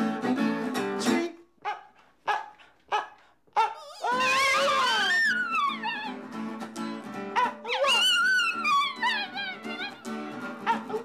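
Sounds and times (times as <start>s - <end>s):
dog yipping: 1.6s - 6.2s, 7.4s - 11.0s.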